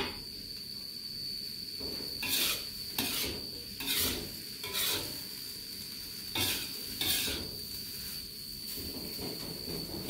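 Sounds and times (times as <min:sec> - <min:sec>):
metal spatula scraping a wok: 0:02.2 - 0:05.4, 0:06.1 - 0:08.3.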